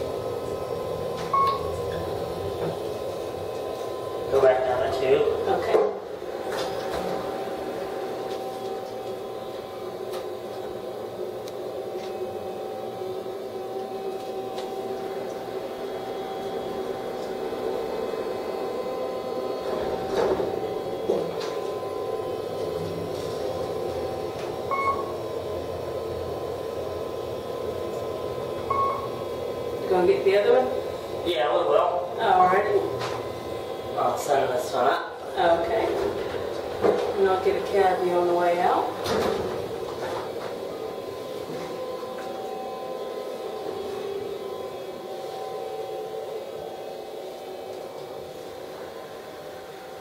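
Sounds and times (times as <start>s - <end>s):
elevator hum with faint whine: 0.0s - 50.0s
short beeps: 1.3s - 1.7s, 24.7s - 25.1s, 28.7s - 29.1s
elevator door sliding: 19.6s - 21.4s.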